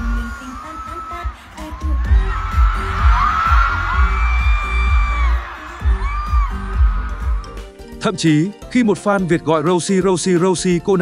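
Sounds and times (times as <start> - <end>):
live pop music with bass beat: 0.0 - 8.0.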